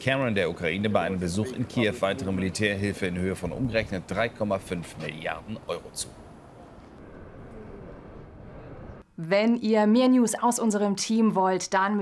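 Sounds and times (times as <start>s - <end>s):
street ambience rumble: 0.0s - 9.0s.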